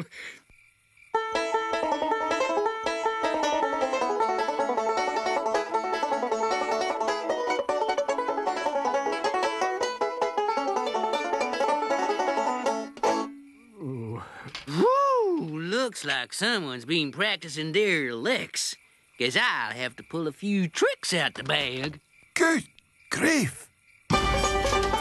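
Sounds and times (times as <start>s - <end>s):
banjo picked fast: 1.2s - 13.4s, 24.1s - 25.0s.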